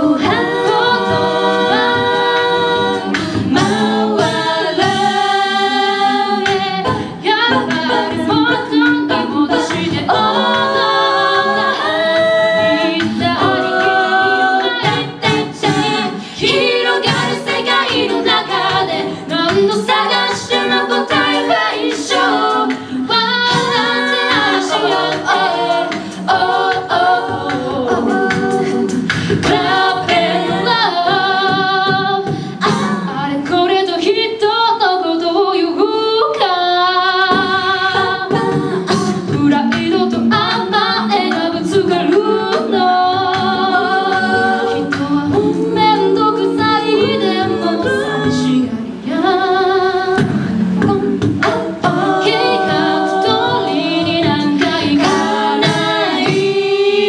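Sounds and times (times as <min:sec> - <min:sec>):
women singing a cappella: 0:00.0 - 0:57.0.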